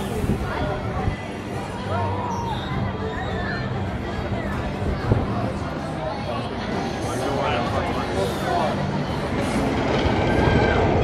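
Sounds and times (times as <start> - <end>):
roller coaster wheels rumbling on track: 0.0 - 11.0.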